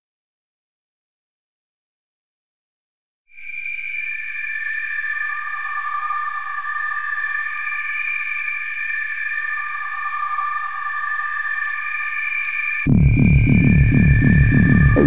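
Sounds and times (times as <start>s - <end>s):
bass line and drum beat: 12.9s - 15.0s
synthesizer chord: 12.9s - 15.0s.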